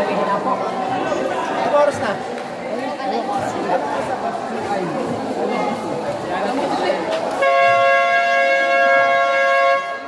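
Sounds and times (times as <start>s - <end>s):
game horn blast: 7.4s - 10.0s.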